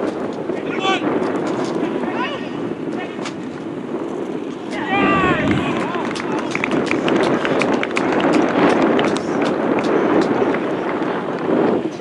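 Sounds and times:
wind rumbling on microphone: 0.0 - 12.0
distant players shouting: 4.7 - 6.6.

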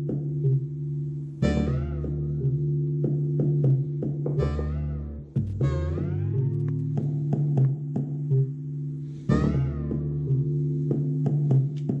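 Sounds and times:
buzzy synthesizer note: 0.0 - 11.6
looping electronic groove: 0.0 - 12.0.

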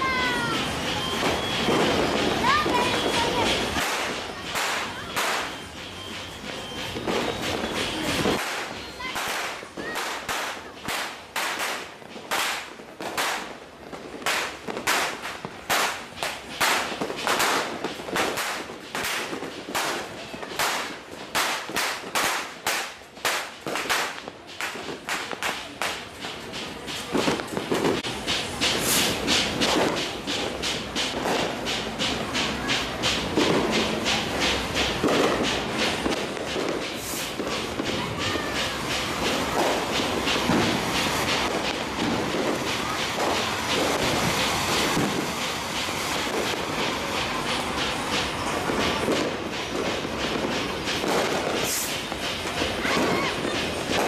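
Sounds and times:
firecrackers exploding: 0.0 - 54.0.

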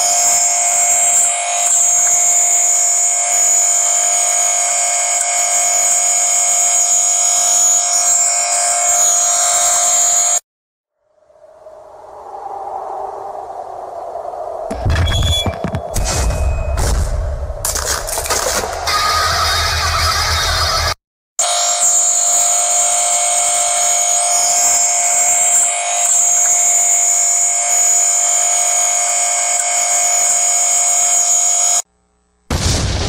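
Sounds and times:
harsh buzzing drone: 0.0 - 10.4, 18.2 - 33.0
distorted electronic music: 17.8 - 21.0.

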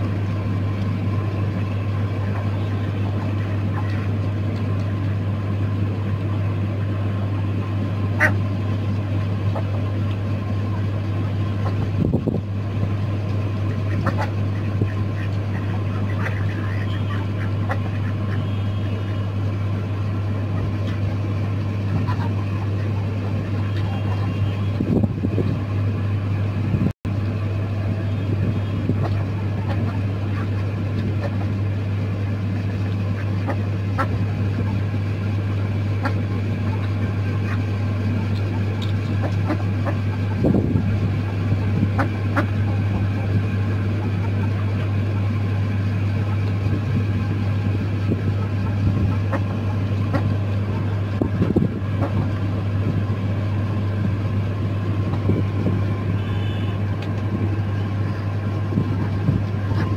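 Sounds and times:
motor humming: 0.0 - 59.9.

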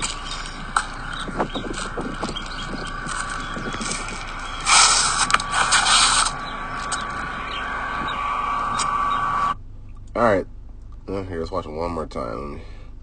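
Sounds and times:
loud rushing burst: 0.0 - 9.6
steady hiss: 0.0 - 9.6
faint whine: 0.0 - 13.0.

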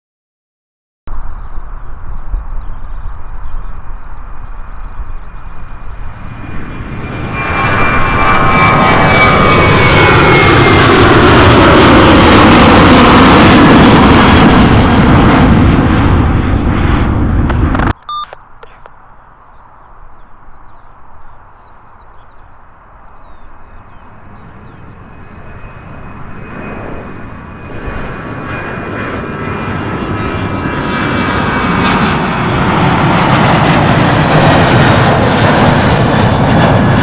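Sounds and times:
jet engine whine: 1.1 - 37.0
jet engines roaring: 1.1 - 37.0.

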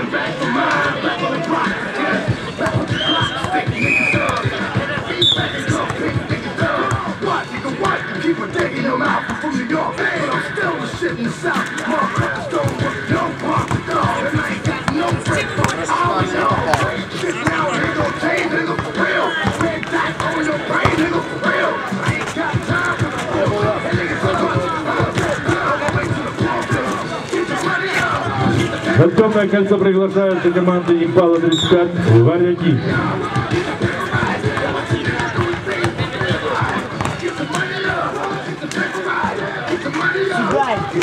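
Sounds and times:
people talking and calling out: 0.0 - 41.0
players' voices: 0.0 - 41.0
basketball bouncing: 10.9 - 21.3, 22.0 - 27.1, 33.2 - 38.9
basketball bouncing on hard court: 13.6 - 18.0, 18.8 - 21.1, 34.4 - 37.7.

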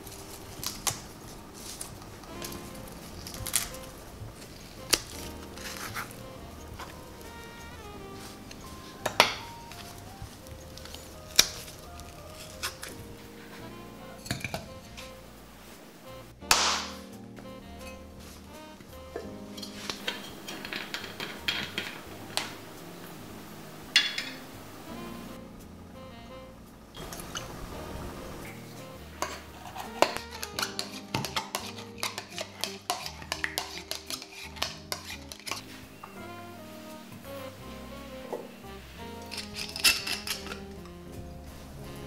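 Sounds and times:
palms slapping leaves: 0.0 - 7.6, 16.5 - 17.1, 29.2 - 35.8.

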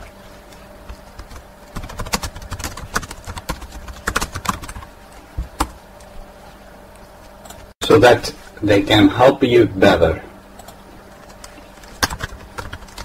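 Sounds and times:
computer keyboard typing: 0.8 - 4.9, 10.6 - 13.0.

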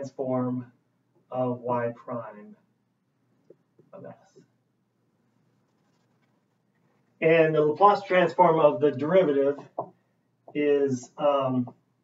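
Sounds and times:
marker strokes on whiteboard: 5.4 - 7.2.

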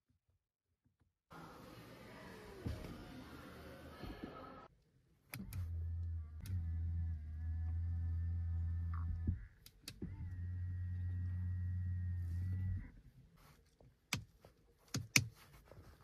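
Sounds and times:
mirror motor humming: 5.4 - 12.9.

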